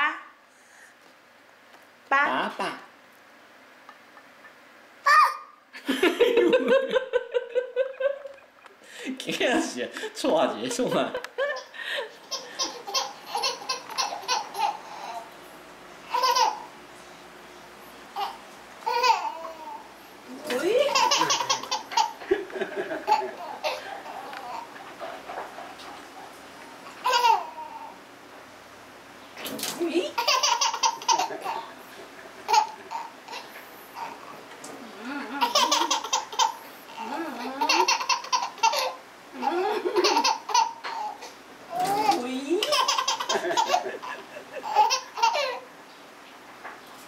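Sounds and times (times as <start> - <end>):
baby laughing: 11.6 - 15.3, 16.1 - 16.7, 18.2 - 19.9, 20.5 - 24.8, 26.8 - 28.0, 30.1 - 34.4, 35.3 - 45.7.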